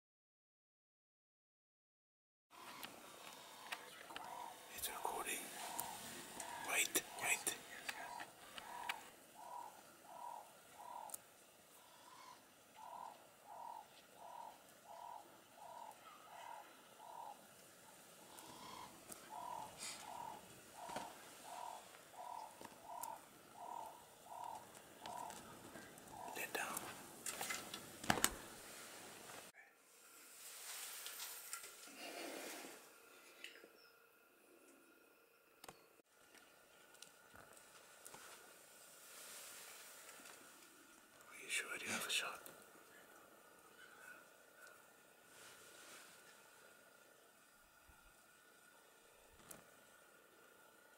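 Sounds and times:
faint outdoor ambience: 2.5 - 50.9
bird hooting: 2.6 - 27.0.

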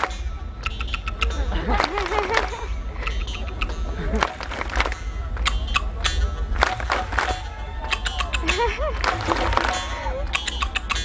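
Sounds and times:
steady low rumble: 0.0 - 11.0
wooden clapper clacks: 0.0 - 11.0.

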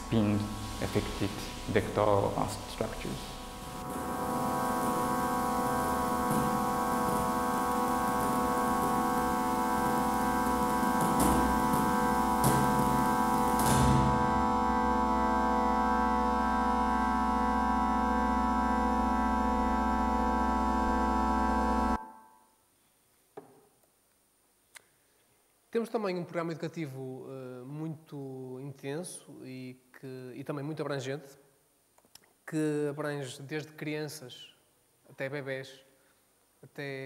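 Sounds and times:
flurries of noise: 0.0 - 15.0
low hum: 0.0 - 22.0
electronic drone of held tones: 0.0 - 22.5.

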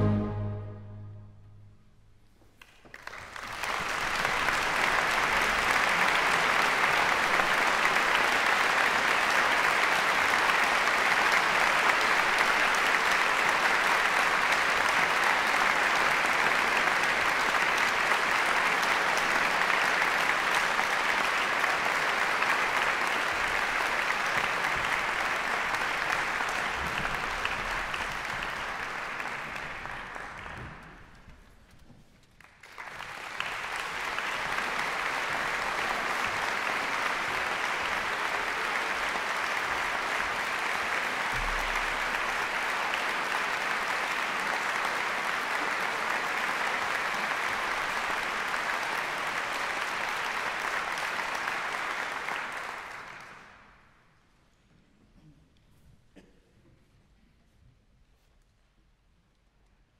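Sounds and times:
large audience applauding: 2.6 - 54.0.

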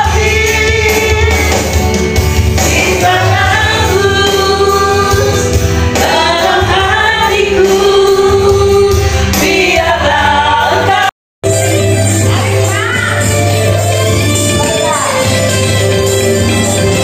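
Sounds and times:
amplified backing music: 0.0 - 17.0.

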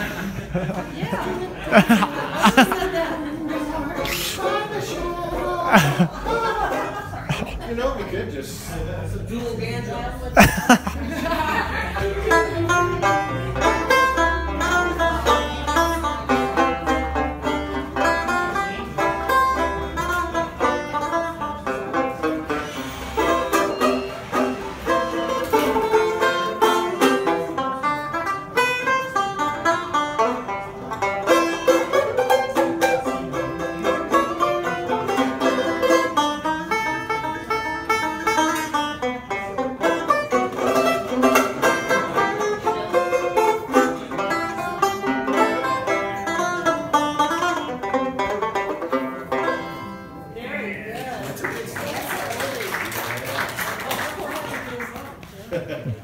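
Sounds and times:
banjo plucked notes: 0.0 - 8.0, 9.6 - 50.4.

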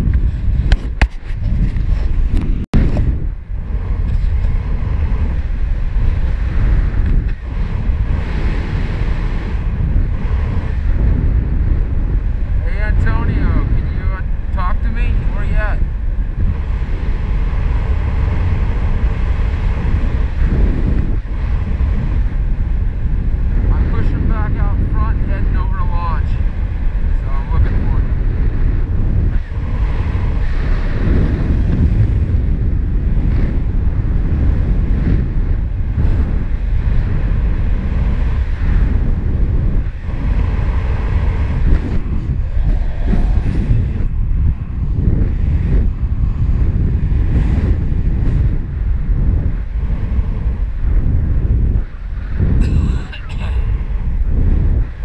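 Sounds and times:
wind rushing over microphone: 0.0 - 55.0.

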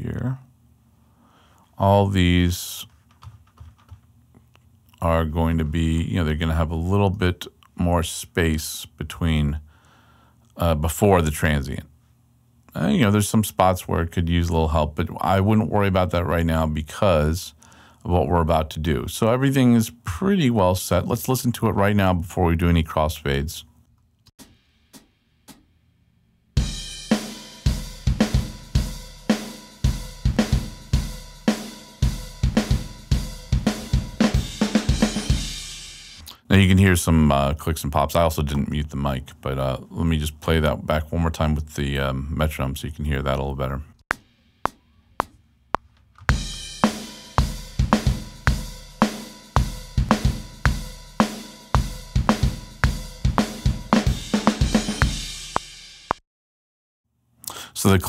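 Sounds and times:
drum kit beat: 24.4 - 25.7, 26.6 - 36.4, 44.1 - 56.2
metronome ticks: 24.4 - 25.7.

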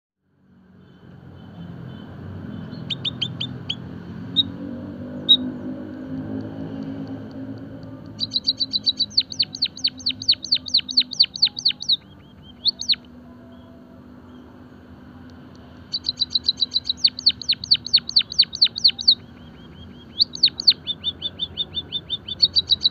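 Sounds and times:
bird chirping: 0.8 - 14.6, 15.3 - 22.9
rapid downward-sweeping bird notes: 8.2 - 13.0, 15.9 - 22.9.

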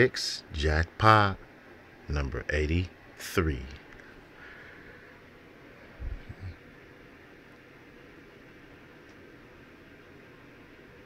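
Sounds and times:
faint room noise: 0.0 - 11.0
low thumps: 6.0 - 6.5.

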